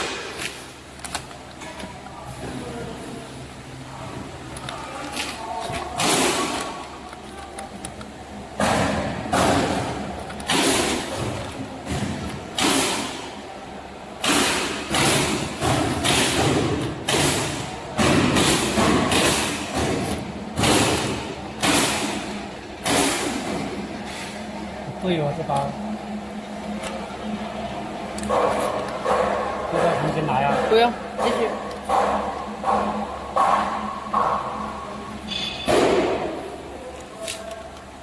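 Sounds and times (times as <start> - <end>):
packing machine humming: 0.0 - 38.0.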